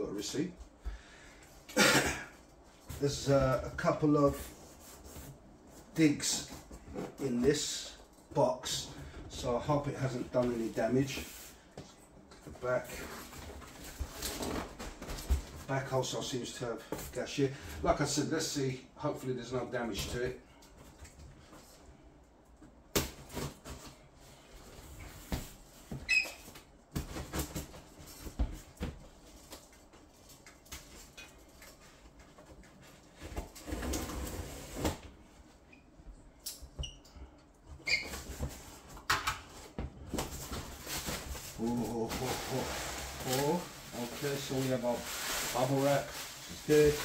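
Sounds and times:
cardboard and packing rustle: 2.6s - 17.2s, 38.1s - 47.0s
man murmuring: 41.6s - 42.7s.

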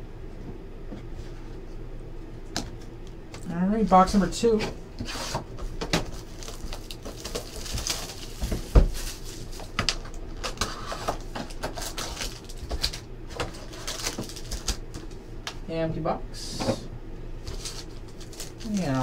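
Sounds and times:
card and foil rustling: 4.5s - 15.3s, 17.4s - 19.0s.

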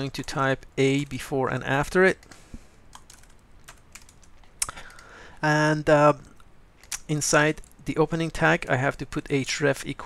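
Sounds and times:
computer keyboard key clicks: 2.9s - 5.0s.

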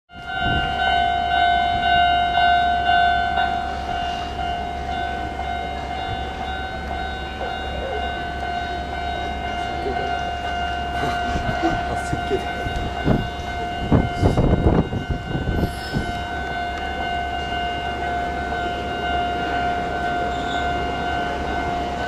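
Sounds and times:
electric train rumbling: 0.1s - 22.0s
electronic warning bell ringing: 0.1s - 22.0s.

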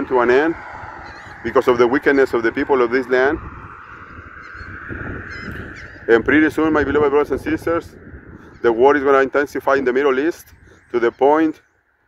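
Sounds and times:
distant birds calling: 0.0s - 12.0s
wind rumble: 0.0s - 12.0s.

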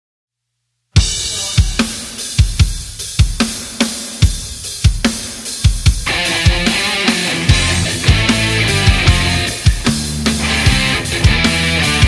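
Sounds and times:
cymbal crash: 1.0s - 11.3s
rock drum kit playing: 1.0s - 12.0s.

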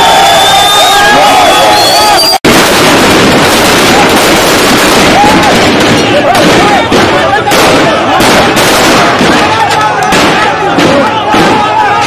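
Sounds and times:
crowd of men shouting: 0.0s - 2.4s, 3.5s - 12.0s
crowd noise: 0.0s - 12.0s
loud distorted gunfire: 2.5s - 12.0s.

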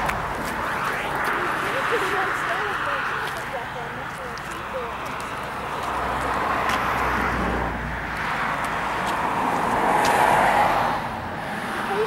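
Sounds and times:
road traffic passing: 0.0s - 12.0s.

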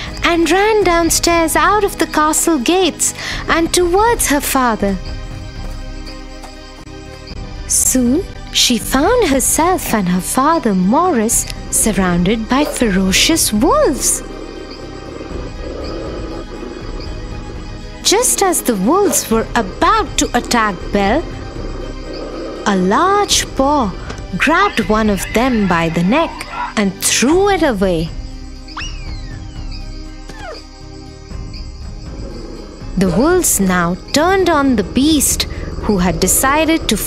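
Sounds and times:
background music: 0.0s - 37.0s
wolves growling: 11.0s - 27.1s, 31.4s - 37.0s.

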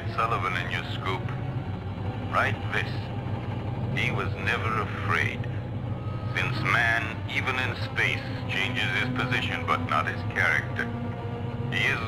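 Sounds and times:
low electronic hum: 0.0s - 12.0s.

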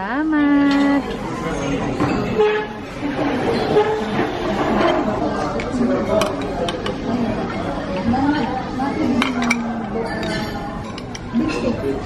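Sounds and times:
diners chattering: 0.0s - 12.0s
metal spoon clinking dishes: 9.2s - 11.8s.

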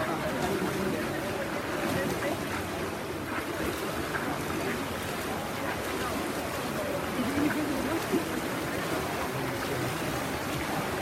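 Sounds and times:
swimmers splashing: 0.0s - 11.0s.

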